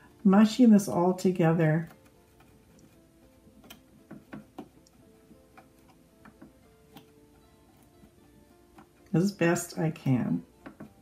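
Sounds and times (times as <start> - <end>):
faint guitar music: 0.0 - 11.0.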